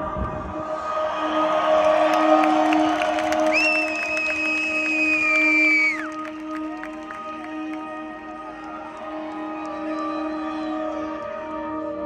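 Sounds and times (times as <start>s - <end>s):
crowd cheering: 0.8s - 11.2s.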